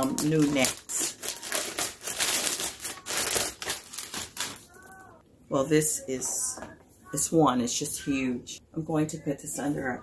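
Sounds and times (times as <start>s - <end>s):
plastic bag crinkling: 0.0s - 5.1s.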